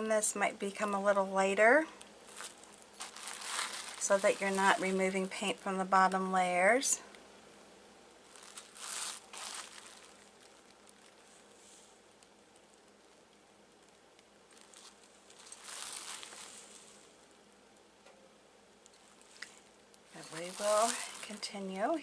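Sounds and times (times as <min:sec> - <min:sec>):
low room hiss: 0:00.0 - 0:22.0
paintbrush rustling on glass: 0:02.2 - 0:05.8, 0:08.3 - 0:12.0, 0:14.5 - 0:17.3, 0:18.9 - 0:22.0.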